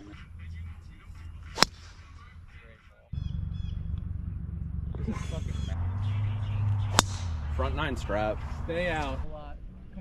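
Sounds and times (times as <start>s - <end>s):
golf club striking ball: 1.5s - 2.3s, 6.6s - 7.7s.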